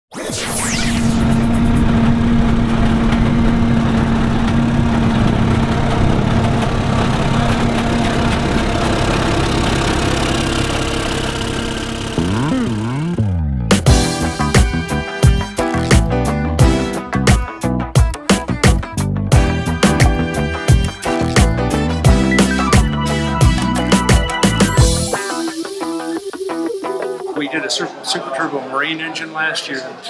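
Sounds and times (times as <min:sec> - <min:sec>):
diesel truck engine revving: 0:00.6 - 0:17.1, 0:18.6 - 0:25.2
music: 0:12.5 - 0:27.9.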